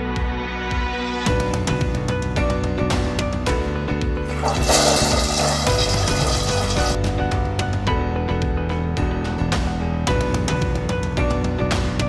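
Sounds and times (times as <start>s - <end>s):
background music: 0.0s - 12.0s
toilet flushing: 4.3s - 7.0s.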